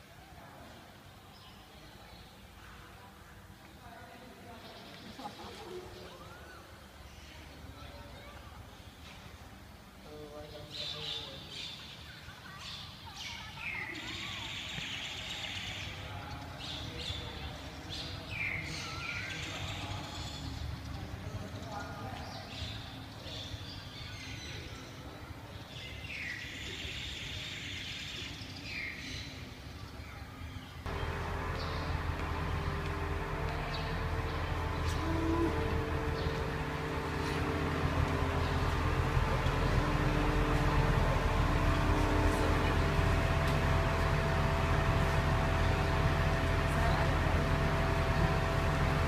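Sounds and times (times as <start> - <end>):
birds chirping: 30.0 - 49.0
bus diesel engine idling: 30.9 - 49.0
steady low rumble: 30.9 - 49.0.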